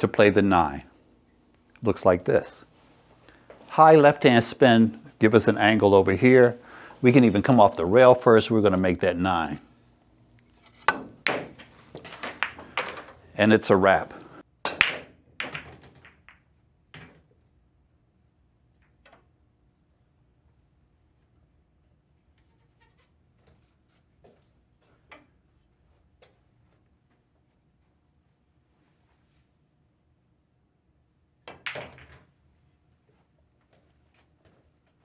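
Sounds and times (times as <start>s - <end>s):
pool balls clicking: 10.4s - 17.5s, 31.4s - 32.4s
cue striking cue ball: 10.7s - 13.2s
balls knocking off cushions: 10.9s - 13.2s.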